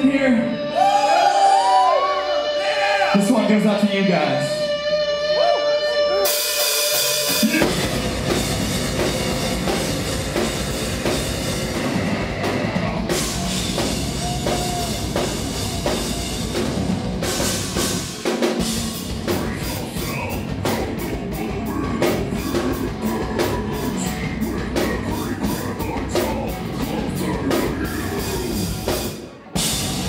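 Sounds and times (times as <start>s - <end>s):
heavy metal band playing: 0.0s - 30.0s
rapid drum and cymbal hits: 6.3s - 30.0s.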